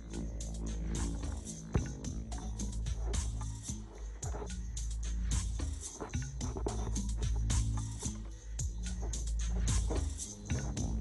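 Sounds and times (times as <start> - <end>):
music with a steady beat: 0.0 - 11.0.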